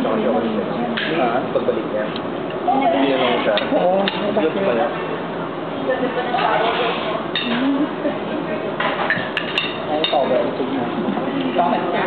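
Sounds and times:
diners chattering: 0.0s - 12.0s
cutlery clinking on plates: 8.8s - 10.4s.

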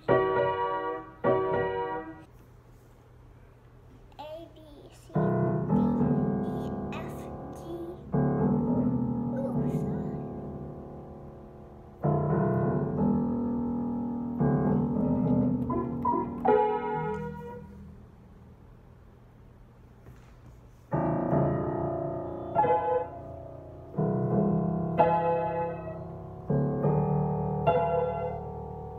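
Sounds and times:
piano chords and notes: 0.0s - 2.3s, 5.1s - 18.5s, 20.9s - 28.9s
child's voice: 4.1s - 8.1s, 9.3s - 10.3s.

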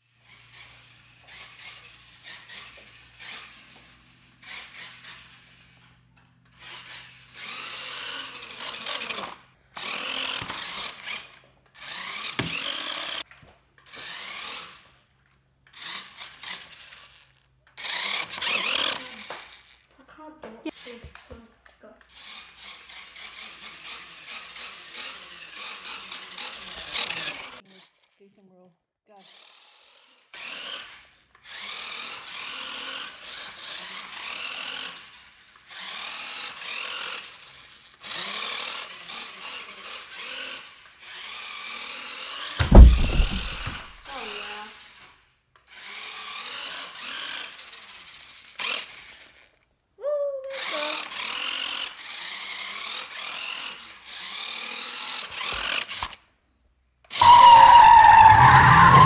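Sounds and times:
toy car electric motor whirring: 0.0s - 56.4s, 57.0s - 59.0s
loud heavy thump: 42.6s - 44.0s.

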